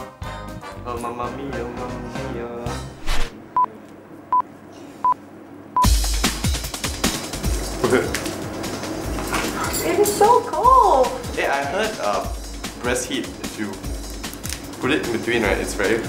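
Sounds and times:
background music: 0:00.0 - 0:03.2, 0:05.8 - 0:16.0.

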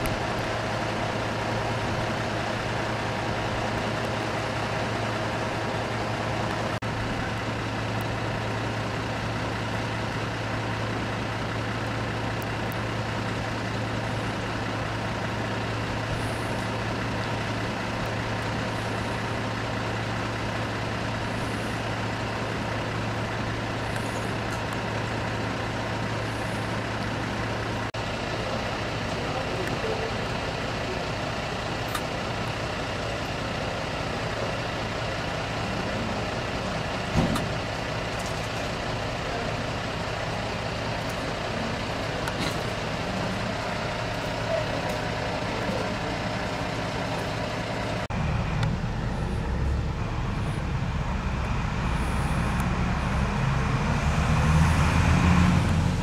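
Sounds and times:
vehicle engine humming: 0:00.0 - 0:56.0
faint voices: 0:28.0 - 0:48.1.

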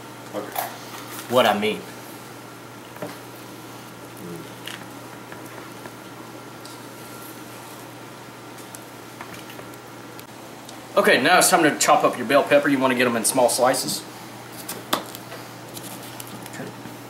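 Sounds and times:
low hum and hiss: 0:00.0 - 0:17.0.

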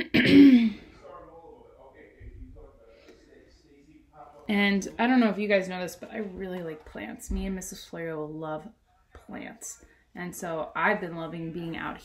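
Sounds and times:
woman clearing her throat: 0:00.0 - 0:00.9.

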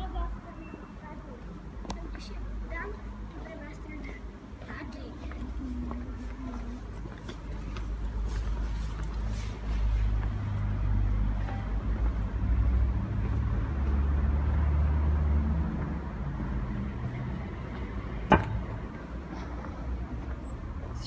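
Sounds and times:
car engine rumbling past: 0:09.7 - 0:20.3.

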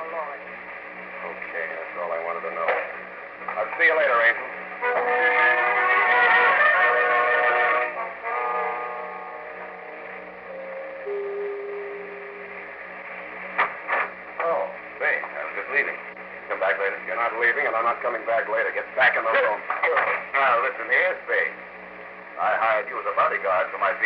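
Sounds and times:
steady low hum: 0:00.0 - 0:05.0, 0:09.0 - 0:24.0
radio drama speech: 0:01.1 - 0:06.3, 0:13.9 - 0:21.6, 0:22.4 - 0:24.0.

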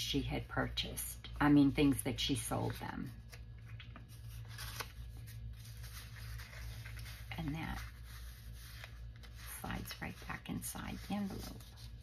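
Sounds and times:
low room hum: 0:00.0 - 0:12.0
paper card rustling: 0:02.3 - 0:12.0.

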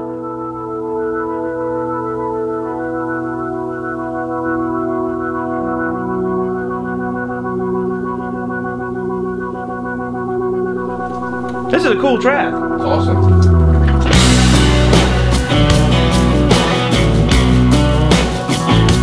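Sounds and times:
sustained organ chords: 0:02.8 - 0:19.0.

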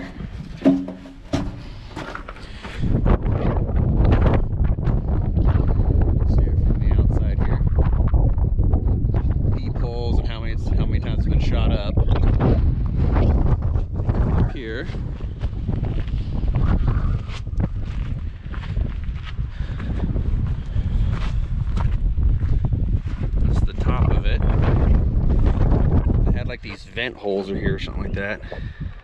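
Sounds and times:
wind buffeting microphone: 0:00.0 - 0:29.0
footsteps on gravel: 0:14.8 - 0:23.3.

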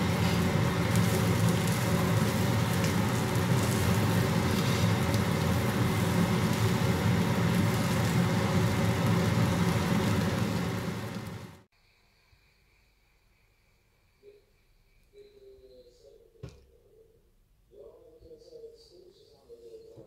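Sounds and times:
spatula stirring in a pan: 0:00.0 - 0:10.4
food sizzling in a pan: 0:00.0 - 0:11.7.

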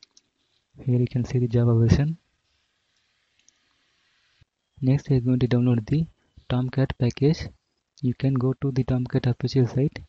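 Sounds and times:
faint steady hiss: 0:00.0 - 0:10.0.

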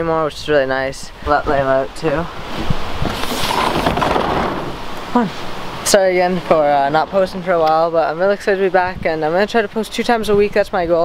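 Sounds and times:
sliding glass door rolling open: 0:03.1 - 0:04.8.

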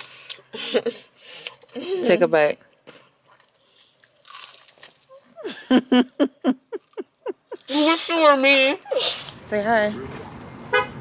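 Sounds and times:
child chewing crunchy food: 0:03.2 - 0:05.4, 0:06.7 - 0:07.7.

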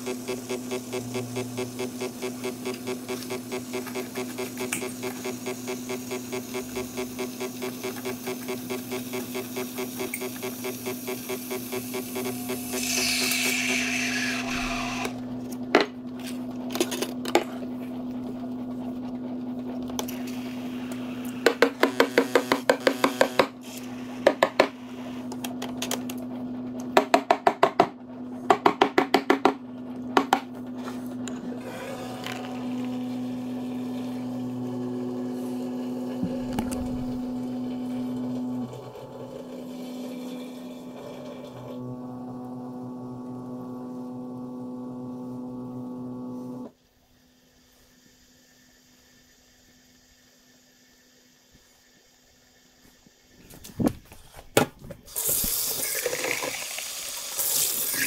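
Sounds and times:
espresso machine pump hum: 0:00.0 - 0:16.7, 0:17.3 - 0:25.6, 0:30.0 - 0:53.3
milk steaming hiss: 0:55.1 - 0:58.0.

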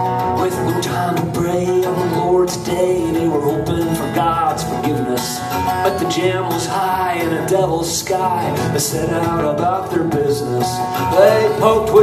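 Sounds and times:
acoustic guitar: 0:00.0 - 0:12.0
electric guitar: 0:00.0 - 0:12.0
man singing: 0:00.0 - 0:12.0.

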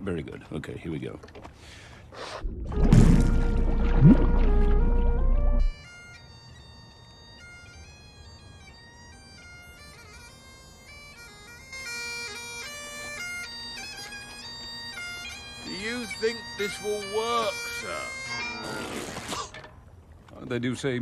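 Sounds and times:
bagpipes playing slow tune: 0:03.2 - 0:19.1.

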